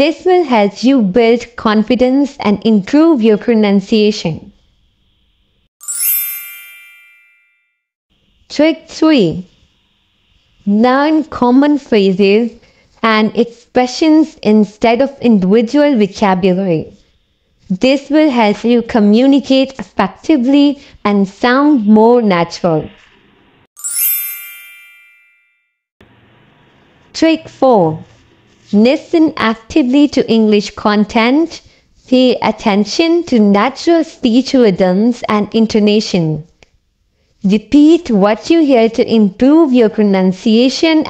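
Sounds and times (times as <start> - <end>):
bright chime: 5.8 - 7.8, 23.8 - 25.7.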